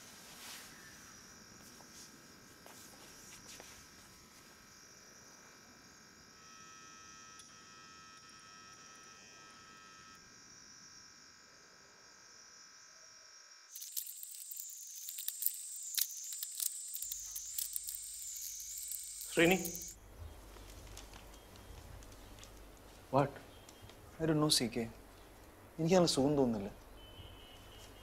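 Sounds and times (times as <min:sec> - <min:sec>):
insects chirring: 0:00.0 - 0:28.0
wavering high insect whine: 0:00.0 - 0:28.0
crackling clicks: 0:13.7 - 0:24.0.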